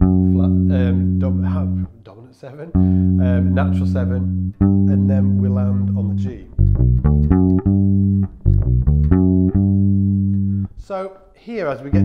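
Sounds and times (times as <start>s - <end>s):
bass guitar arpeggio: 0.0s - 1.9s, 2.8s - 10.8s.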